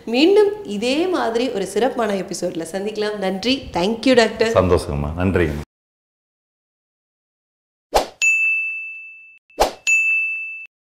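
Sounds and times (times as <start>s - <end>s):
bright bell-like ding: 8.2s - 10.7s.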